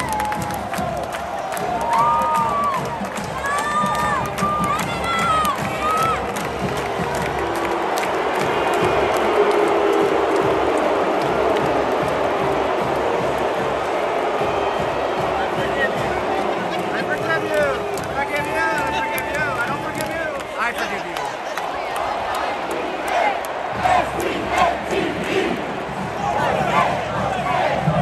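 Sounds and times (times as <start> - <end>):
stadium crowd cheering: 0.0 - 28.0
marching band music: 0.3 - 28.0.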